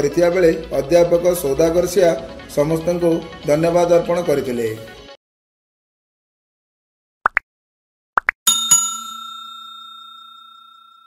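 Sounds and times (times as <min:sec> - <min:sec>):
bell ding: 0:08.5 - 0:11.0.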